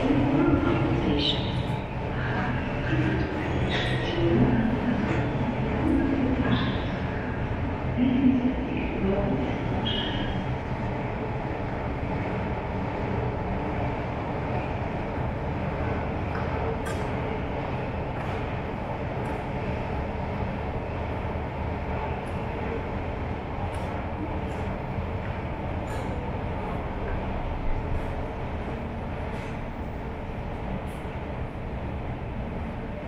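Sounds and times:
faint voices: 0.0s - 10.5s
low station rumble: 0.0s - 33.0s.

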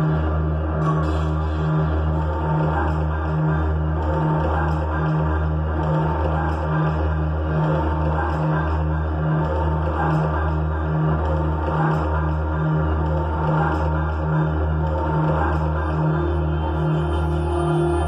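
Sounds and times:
throbbing bass drone: 0.0s - 18.0s.

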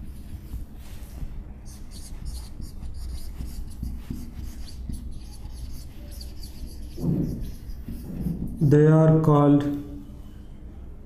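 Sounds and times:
marker scratching on whiteboard: 0.0s - 8.8s
low steady hum: 0.0s - 11.0s.

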